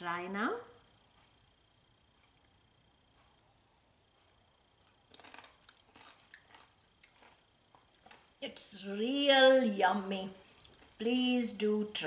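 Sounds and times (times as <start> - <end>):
person crunching tortilla chip: 4.8 - 8.4.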